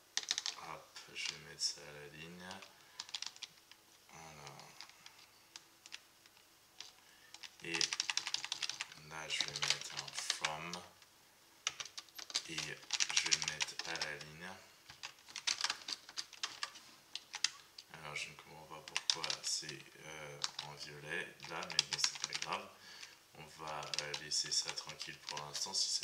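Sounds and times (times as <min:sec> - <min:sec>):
typing on keyboard: 0:00.2 - 0:00.6, 0:02.6 - 0:03.7, 0:04.5 - 0:10.8, 0:11.6 - 0:14.2, 0:14.9 - 0:17.9, 0:18.8 - 0:19.6, 0:20.4 - 0:20.8, 0:21.4 - 0:26.0.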